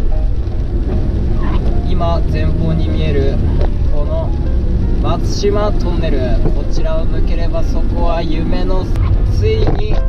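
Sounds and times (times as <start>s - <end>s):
road and tyre noise: 0.0s - 10.0s
man talking: 1.8s - 4.4s, 5.0s - 10.0s.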